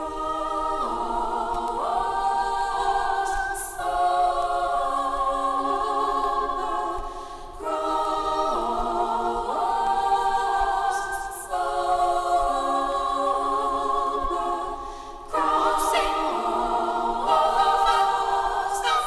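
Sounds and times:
women singing a cappella harmony: 0:00.0 - 0:19.0.

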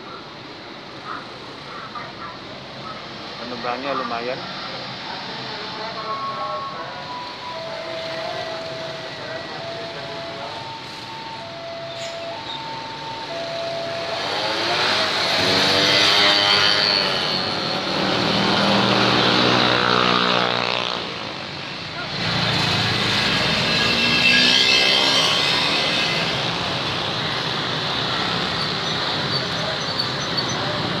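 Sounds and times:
motorbikes revving and passing: 0:10.5 - 0:31.0.

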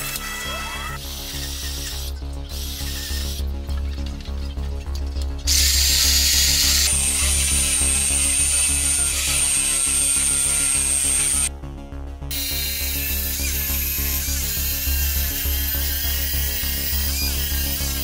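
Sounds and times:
jigsaw cutting wood: 0:05.5 - 0:11.5, 0:12.3 - 0:18.0.

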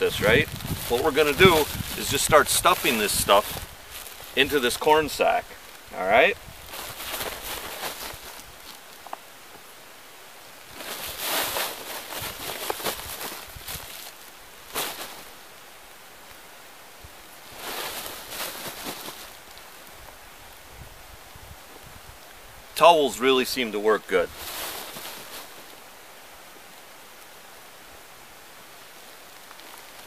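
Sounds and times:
cloth rustling: 0:00.0 - 0:05.4, 0:06.5 - 0:09.1, 0:10.6 - 0:15.4, 0:17.4 - 0:19.8, 0:24.1 - 0:25.8
plastic sack crinkling: 0:00.0 - 0:05.4, 0:06.6 - 0:09.0, 0:10.6 - 0:15.4, 0:17.4 - 0:19.7, 0:24.1 - 0:25.8.

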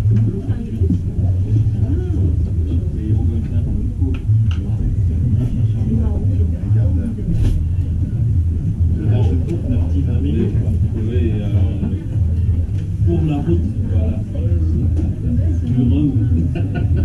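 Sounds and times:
constant low rumble: 0:00.0 - 0:17.0
indistinct voices talking: 0:00.0 - 0:17.0.

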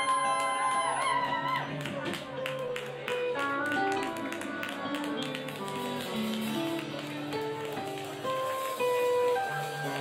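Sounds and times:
quick guitar lead line: 0:01.2 - 0:10.0
live rock band playing: 0:02.1 - 0:10.0.

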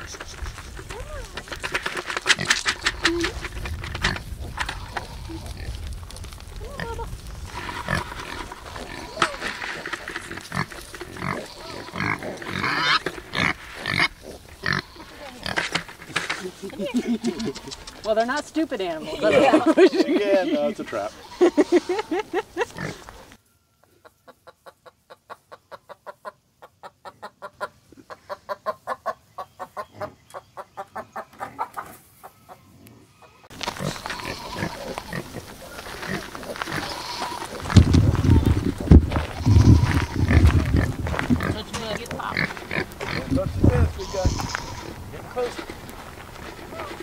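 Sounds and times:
pigs grunting: 0:06.8 - 0:18.1, 0:22.6 - 0:23.3, 0:32.6 - 0:47.0.

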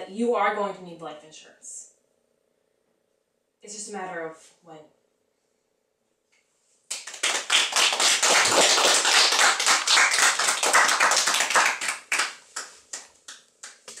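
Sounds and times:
people applauding: 0:06.9 - 0:14.0.

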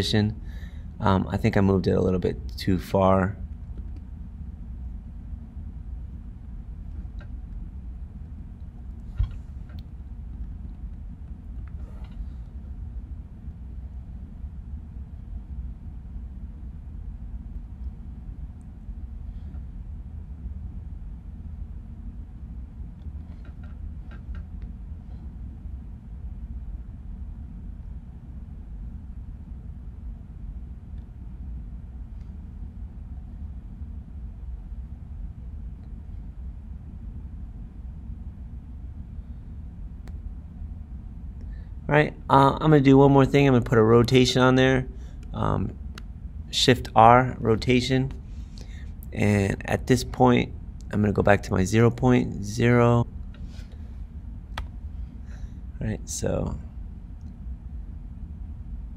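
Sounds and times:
low room noise rumble: 0:00.0 - 0:58.9.

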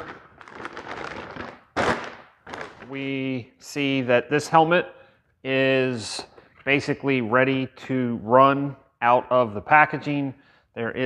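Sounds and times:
plastic bag crinkling: 0:00.0 - 0:03.0.

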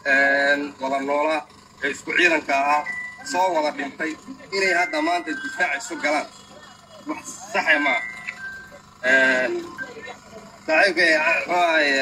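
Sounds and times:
man speaking: 0:00.1 - 0:06.3, 0:10.7 - 0:12.0
brief high tone: 0:02.8 - 0:03.7, 0:04.5 - 0:06.9, 0:07.6 - 0:10.3.

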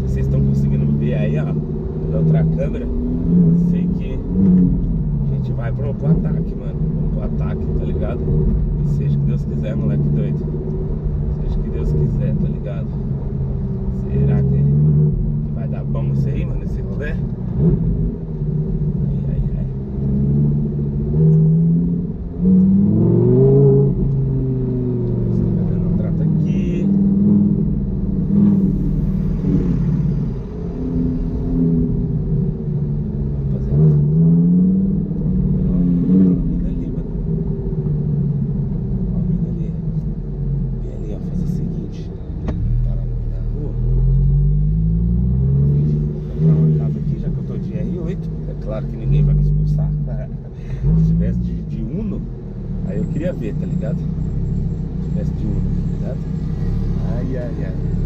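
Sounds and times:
car engine revving: 0:00.0 - 0:58.0
low rumble: 0:00.0 - 0:58.0.

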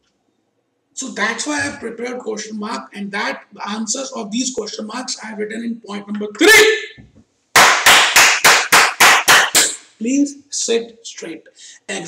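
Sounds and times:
man clapping hands: 0:07.6 - 0:09.9.

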